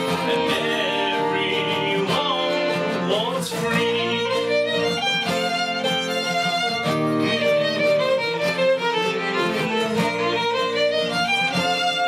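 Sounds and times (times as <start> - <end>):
acoustic guitar accompaniment: 0.0 - 12.0
violin melody: 0.0 - 12.0.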